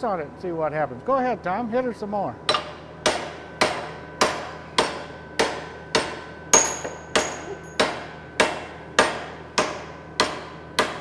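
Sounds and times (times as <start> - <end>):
hammer striking steel: 2.5 - 11.0.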